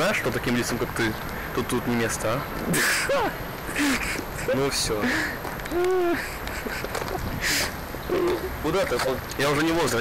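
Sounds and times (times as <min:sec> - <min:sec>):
low outdoor background: 0:00.0 - 0:10.0
young man's voice: 0:04.4 - 0:05.4
short breathy hiss: 0:07.4 - 0:07.8.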